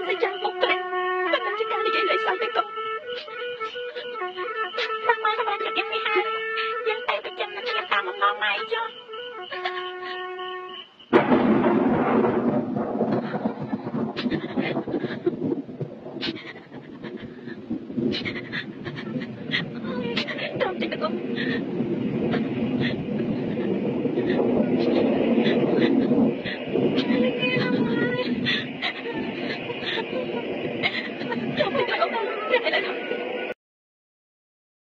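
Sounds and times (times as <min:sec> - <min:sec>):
woman crying: 0:00.0 - 0:10.4, 0:13.1 - 0:15.5, 0:16.2 - 0:33.3
rain hissing: 0:00.0 - 0:33.6
person panting and gasping: 0:16.2 - 0:20.6, 0:21.4 - 0:27.2, 0:28.2 - 0:30.2.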